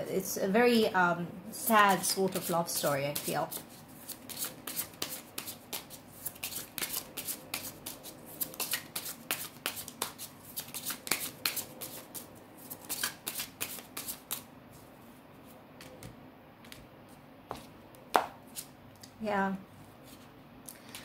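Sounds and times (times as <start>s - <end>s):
cards being shuffled: 3.2s - 14.5s.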